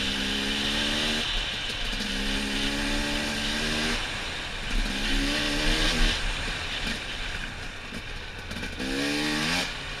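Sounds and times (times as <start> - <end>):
dirt bike engine revving: 0.0 - 7.1, 8.5 - 10.0.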